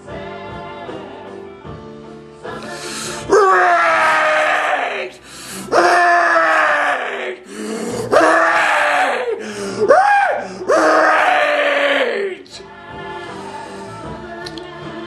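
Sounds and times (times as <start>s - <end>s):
man screaming: 3.2s - 12.6s.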